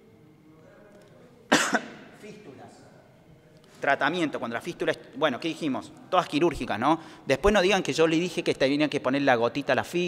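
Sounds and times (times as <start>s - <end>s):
faint room noise: 0.0s - 10.0s
person coughing: 1.5s - 2.0s.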